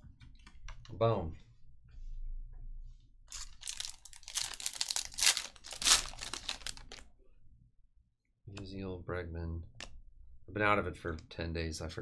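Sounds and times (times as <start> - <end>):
foil wrapper tearing and crinkling: 3.3 - 7.0.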